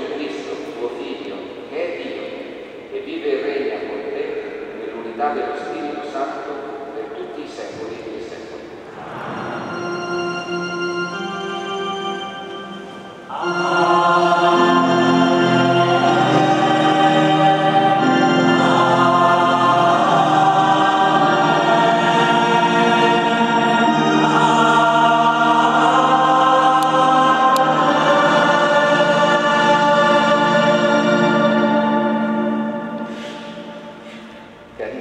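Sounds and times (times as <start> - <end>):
choir singing sacred music: 8.7 - 34.9.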